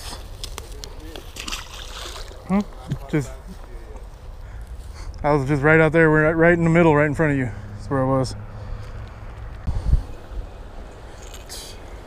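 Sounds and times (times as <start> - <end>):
water sloshing: 1.0 - 2.8
fish splashing into water: 1.2 - 2.4.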